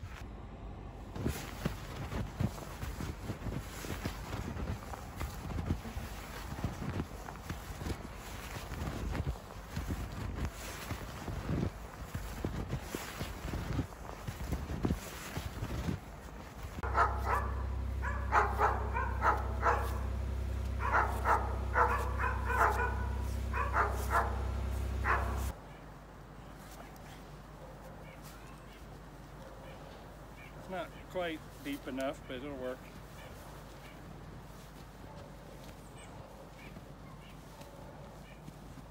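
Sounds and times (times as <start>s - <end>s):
boots crunching through snow: 1.1s - 25.6s, 26.4s - 38.9s
low rumble: 15.6s - 25.6s
dog barking and yipping: 16.8s - 25.6s, 34.9s - 38.6s.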